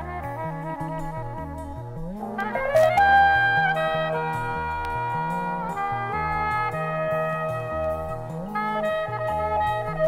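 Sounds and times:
low gliding bass line: 0.0s - 10.0s
horn section playing chords: 2.2s - 10.0s.

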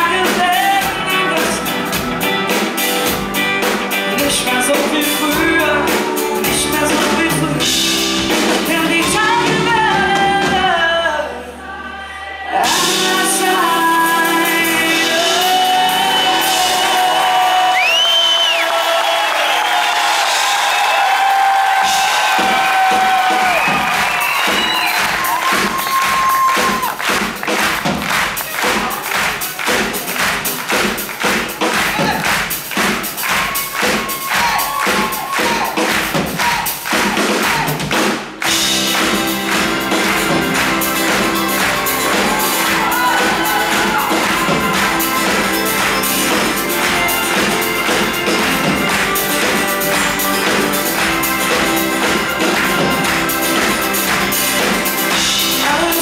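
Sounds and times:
man singing: 0.0s - 2.2s, 3.9s - 11.6s, 12.5s - 18.0s, 42.4s - 45.3s, 55.5s - 56.0s
steady drumbeat: 0.0s - 10.9s, 12.6s - 56.0s
pop-rock band playing: 0.0s - 11.6s, 12.5s - 56.0s.

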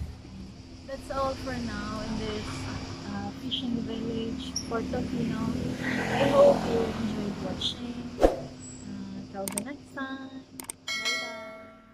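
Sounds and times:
mouse clicks: 9.5s - 9.7s
bell ding ringing: 10.9s - 11.9s.

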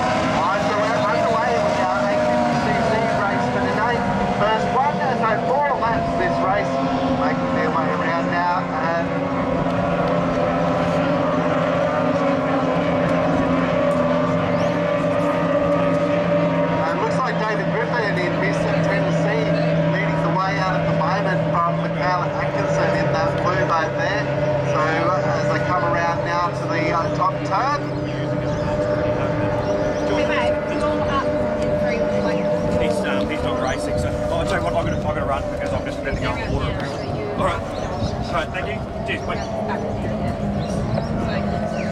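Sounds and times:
people talking: 0.0s - 9.2s, 16.8s - 41.9s
powerboat engines droning: 0.0s - 41.9s.

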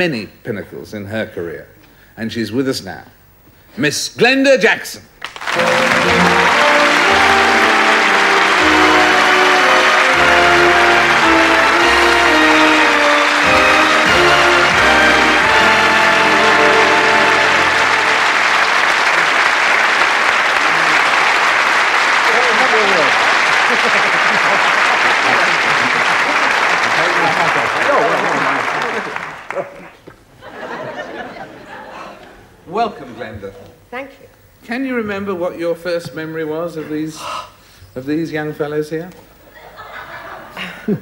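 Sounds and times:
audience applauding: 5.2s - 30.0s
entrance tune music: 5.5s - 20.4s.

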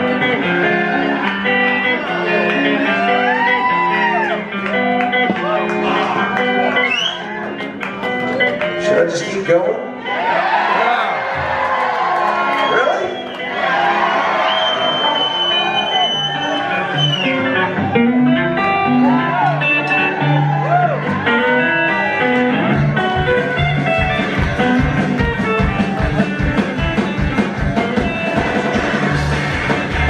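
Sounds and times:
electric guitar lead: 0.0s - 10.2s, 12.2s - 30.0s
upright bass: 16.8s - 30.0s
driving drum beat: 22.8s - 30.0s.

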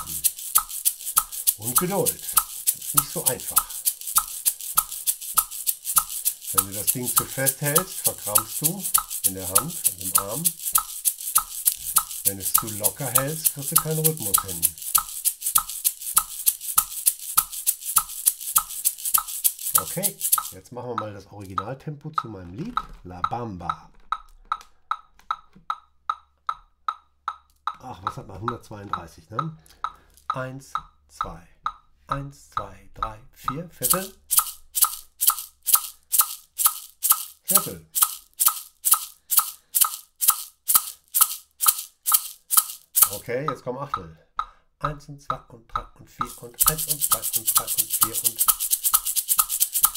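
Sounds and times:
maraca shaking: 0.0s - 20.7s, 33.8s - 43.6s, 46.2s - 49.9s
metronome clicking: 0.0s - 32.7s, 33.4s - 45.0s, 46.2s - 49.9s.

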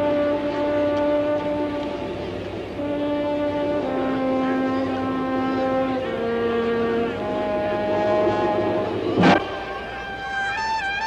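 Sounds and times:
bugle playing long held notes: 0.0s - 11.0s.

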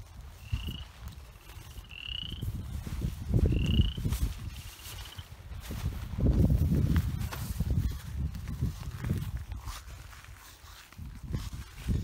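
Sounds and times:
wind buffeting microphone: 0.0s - 12.0s
small animal trilled calls: 0.4s - 2.9s, 3.5s - 5.2s.

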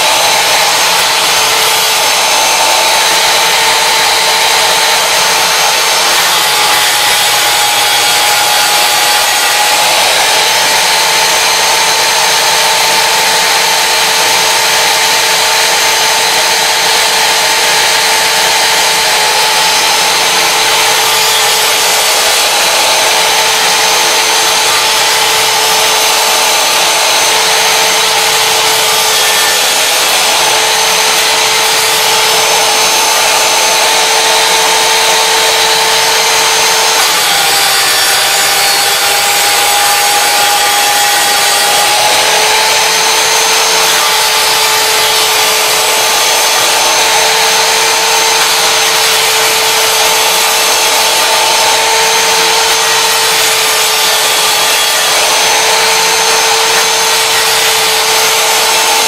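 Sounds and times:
miter saw cutting metal: 0.0s - 59.0s.

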